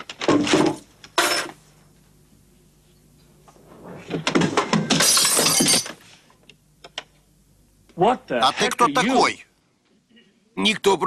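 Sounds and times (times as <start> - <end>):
glass shattering: 4.8 - 6.0.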